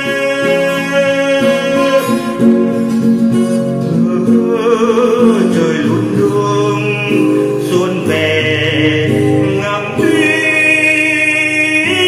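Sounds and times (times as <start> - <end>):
choir-like vocal ballad: 0.0 - 2.8, 3.8 - 12.0.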